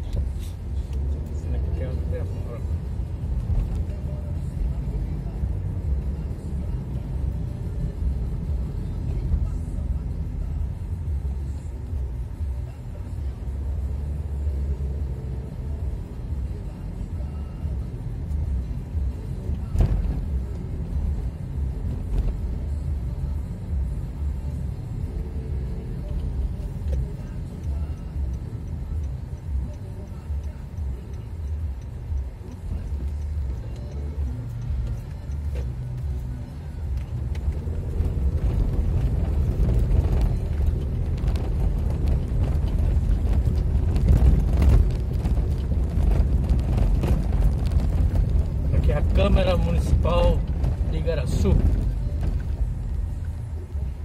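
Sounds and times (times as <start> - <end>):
car driving rumble from inside: 0.0 - 54.0.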